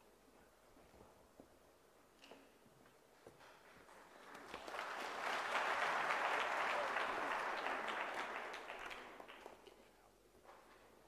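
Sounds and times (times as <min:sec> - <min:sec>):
audience applauding: 0:03.9 - 0:09.8.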